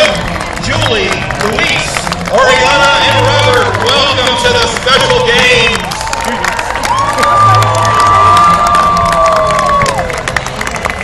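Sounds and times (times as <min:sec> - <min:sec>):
crowd cheering and clapping: 0:00.0 - 0:11.0
high held cheer: 0:00.0 - 0:11.0.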